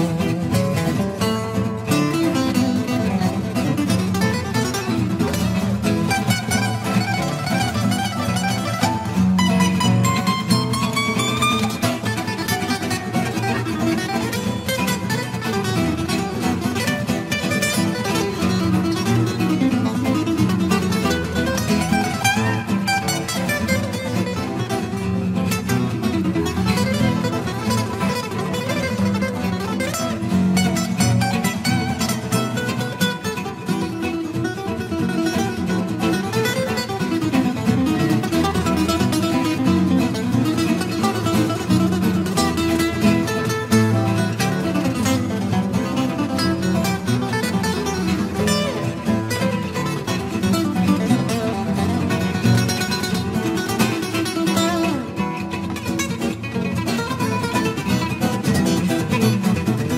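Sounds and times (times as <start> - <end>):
acoustic guitars playing: 0.0 - 59.9.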